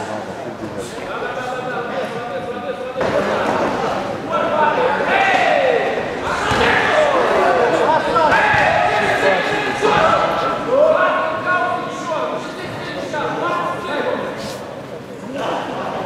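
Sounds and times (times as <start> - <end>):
people shouting: 4.4 - 11.8.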